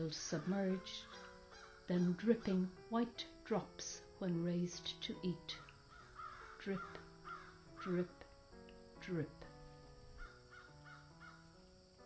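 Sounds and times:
faint music of held notes: 0:00.0 - 0:12.0
faint crow caws: 0:00.8 - 0:02.0, 0:05.6 - 0:07.8, 0:10.1 - 0:11.7.

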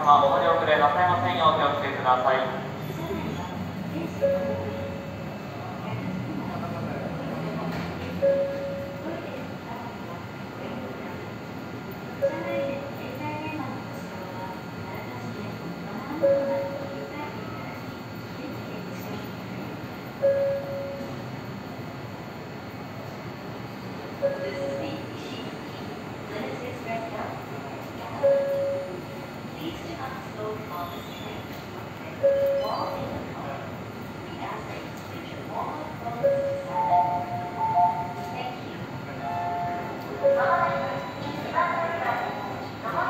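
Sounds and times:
low background murmur: 0:00.0 - 0:43.0
train and station hum: 0:00.0 - 0:43.0
short beep: 0:04.2 - 0:05.1, 0:08.2 - 0:09.0, 0:16.2 - 0:17.0, 0:20.2 - 0:21.2, 0:24.2 - 0:24.8, 0:28.2 - 0:29.0, 0:32.2 - 0:33.1, 0:39.2 - 0:42.8.

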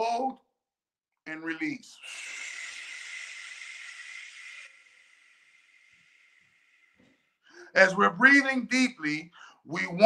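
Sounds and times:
breathy exhalation through lips: 0:01.9 - 0:07.7.

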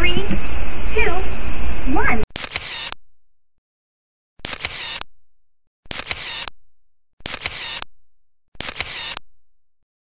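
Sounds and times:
camera shutter sound effect: 0:02.3 - 0:03.0, 0:04.4 - 0:05.0, 0:05.9 - 0:06.5, 0:07.2 - 0:07.8, 0:08.6 - 0:09.2.

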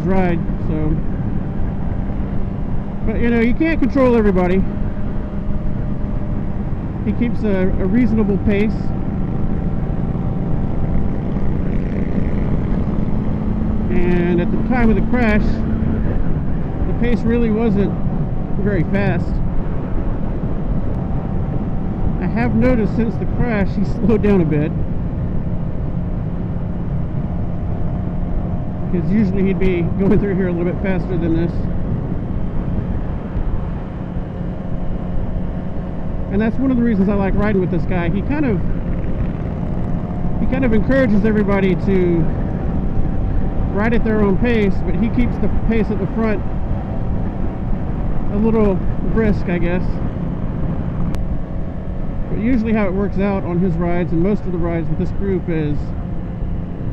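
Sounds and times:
motorcycle engine cruising: 0:00.0 - 0:56.9
wind and road noise: 0:00.0 - 0:56.9.

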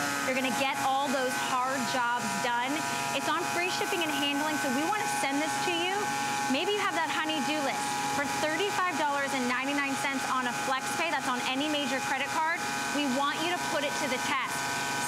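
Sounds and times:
pressure washer motor whine: 0:00.0 - 0:15.0
people talking: 0:00.3 - 0:14.6.

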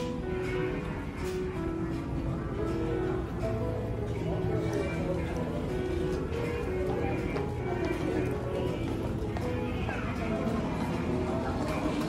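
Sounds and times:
background music with held notes: 0:00.0 - 0:12.0
voices: 0:00.0 - 0:12.0
footsteps on tiled floor: 0:00.7 - 0:12.0.

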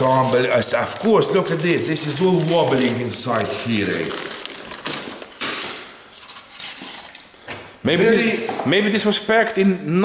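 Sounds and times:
plastic bag rustling: 0:00.0 - 0:07.3.

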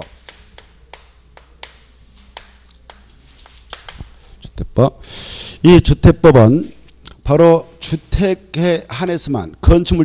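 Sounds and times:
chalk tapping on blackboard: 0:00.0 - 0:04.2.

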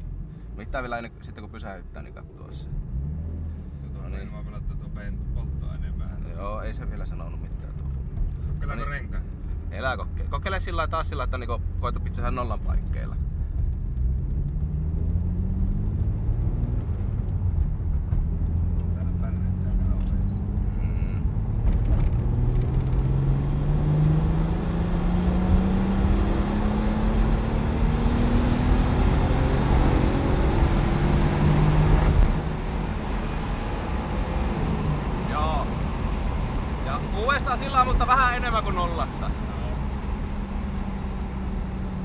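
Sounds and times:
car engine revving from inside cabin: 0:14.0 - 0:17.6, 0:18.3 - 0:37.2.

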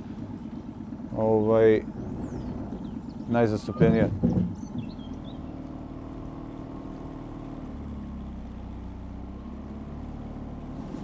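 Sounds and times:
boat engine running: 0:00.0 - 0:09.7.

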